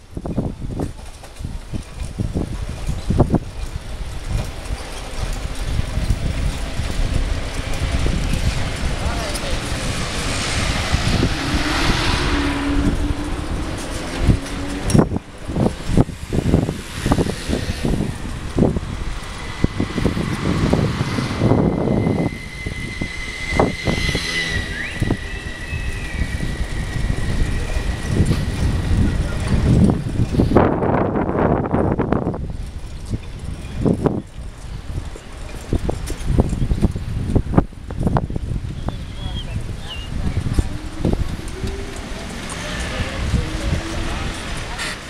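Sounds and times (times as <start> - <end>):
bicycle rumbling over road: 0.0 - 45.0
passing street traffic: 0.0 - 45.0
wind buffeting microphone: 0.0 - 45.0
thin high whistle: 21.2 - 28.2.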